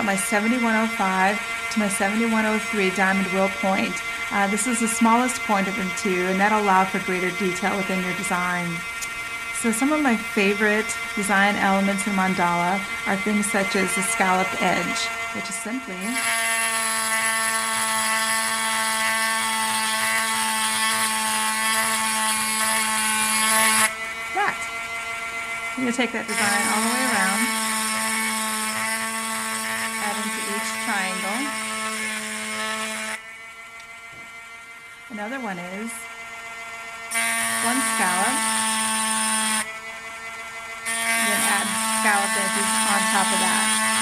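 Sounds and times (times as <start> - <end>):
rotary tool motor whine: 0.0 - 44.0.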